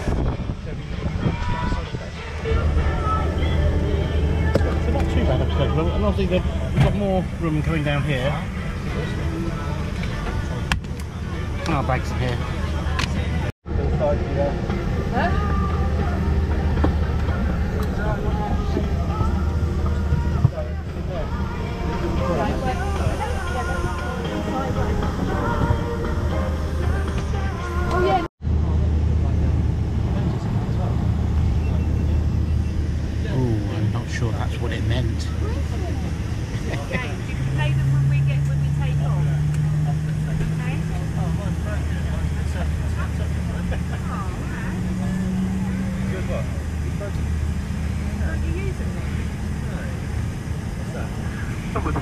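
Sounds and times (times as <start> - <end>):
murmur of passengers' voices: 0.0 - 52.0.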